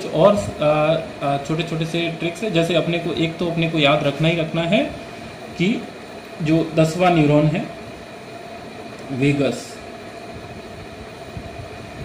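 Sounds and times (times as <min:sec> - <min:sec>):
machine-like room hum: 0:00.0 - 0:12.0.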